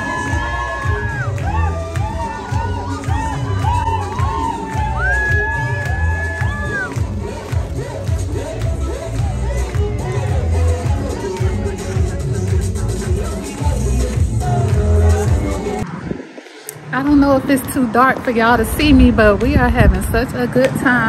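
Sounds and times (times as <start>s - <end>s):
crowd cheering and shouting: 0.0s - 18.9s
loud music with bass beat: 0.0s - 20.2s.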